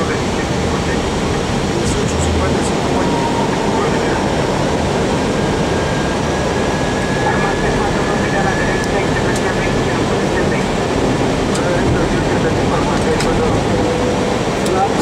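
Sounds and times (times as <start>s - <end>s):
airflow and engine noise: 0.0s - 15.0s.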